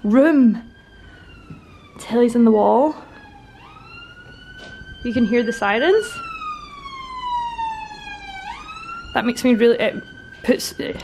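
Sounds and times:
ambulance siren wailing: 0.0s - 11.0s.

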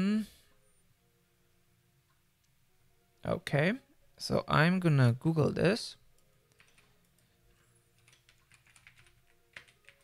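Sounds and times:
typing on computer keyboard: 6.5s - 7.2s, 8.0s - 10.0s.

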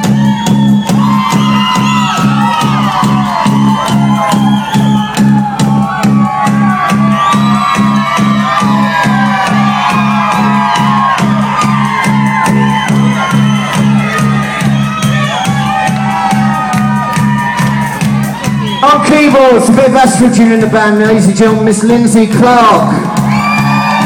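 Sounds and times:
crowd shouting and whooping: 0.0s - 24.0s
drum beat: 0.0s - 24.0s
live rock band playing: 0.0s - 24.0s
pulsing bass line: 0.0s - 24.0s.

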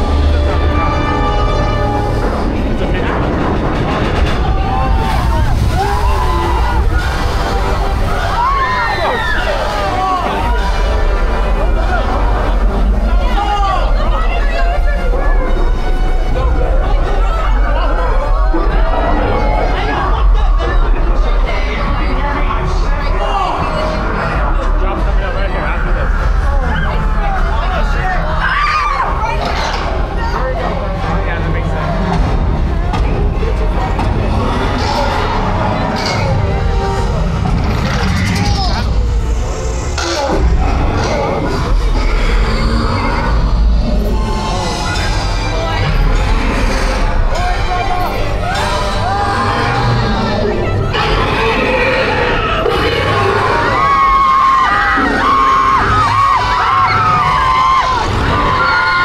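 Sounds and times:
steady low rumble: 0.0s - 8.6s, 29.2s - 51.6s
people chattering and calling out: 0.0s - 59.0s
voices: 0.0s - 59.0s.

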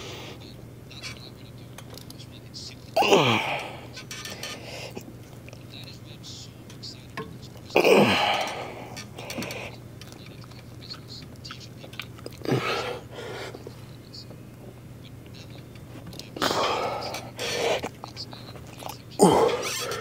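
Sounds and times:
man exhaling and grunting: 3.0s - 3.8s, 7.8s - 8.8s, 19.2s - 20.0s
weight machine: 3.4s - 4.7s.

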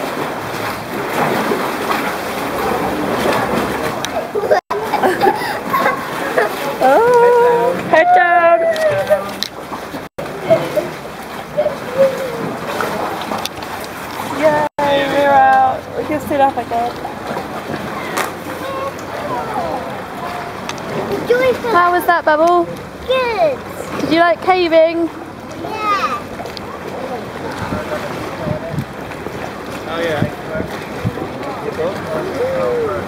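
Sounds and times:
water sloshing around kayak: 0.0s - 33.0s
faint voices: 10.2s - 13.4s, 14.2s - 22.0s, 25.1s - 33.0s
wind noise on microphone: 27.5s - 29.2s, 30.0s - 31.4s.

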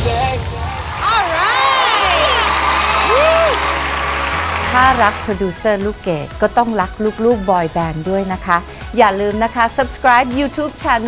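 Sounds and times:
studio audience cheering and applauding: 0.0s - 7.8s
music: 0.0s - 11.0s.

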